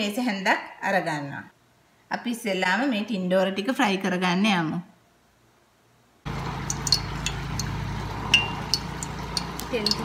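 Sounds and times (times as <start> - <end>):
heating oil hum: 6.3 - 10.0
oil crackling: 6.3 - 10.0.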